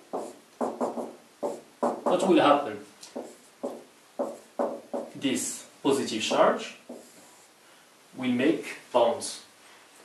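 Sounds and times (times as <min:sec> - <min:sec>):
marker squeaking on whiteboard: 0:00.0 - 0:02.3, 0:03.1 - 0:05.2, 0:06.9 - 0:07.5.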